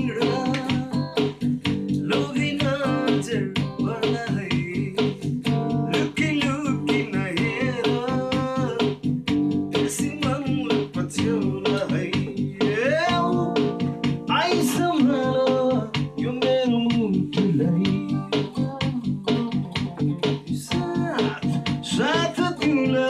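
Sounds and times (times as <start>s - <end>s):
backing track drums and bass: 0.0s - 23.0s
electric guitar lead solo: 0.0s - 23.0s.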